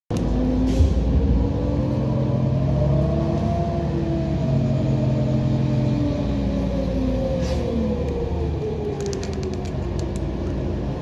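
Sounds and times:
bus diesel engine: 0.1 - 11.0.

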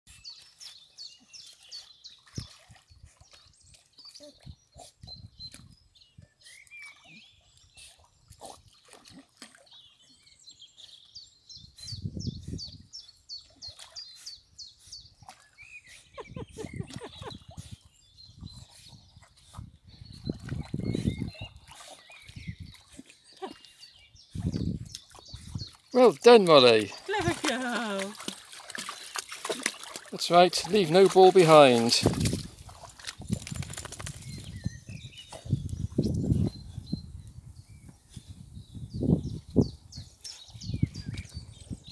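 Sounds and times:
small birds chirping: 0.1 - 41.9.

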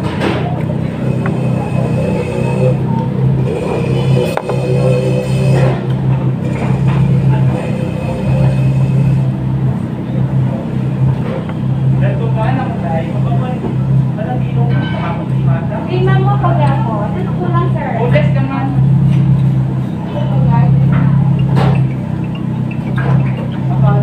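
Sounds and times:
indistinct chatter: 0.0 - 24.0
steady low hum: 0.0 - 24.0.

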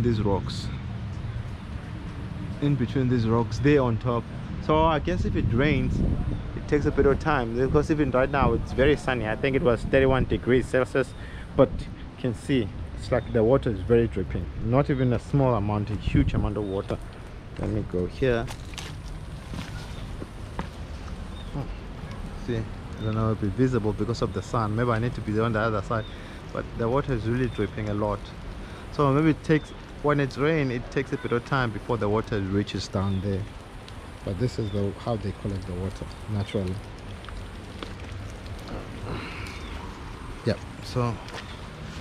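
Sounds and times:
wind rumble on microphone: 3.2 - 11.0, 14.3 - 25.4
water drips: 18.5 - 41.9.

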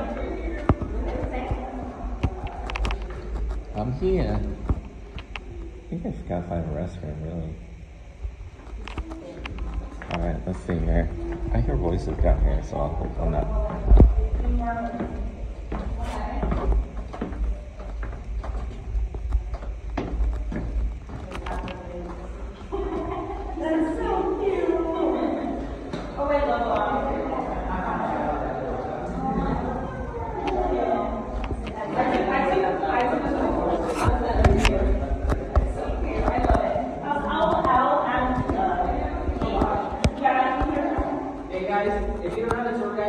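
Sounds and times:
people talking in reverberant room: 0.0 - 43.0
footsteps on stone floor: 8.3 - 24.1.

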